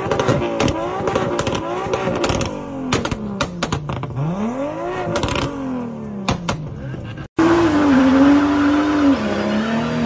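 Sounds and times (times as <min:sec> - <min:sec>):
exhaust crackling and popping: 0:00.0 - 0:07.4
car engine revving: 0:00.0 - 0:10.0.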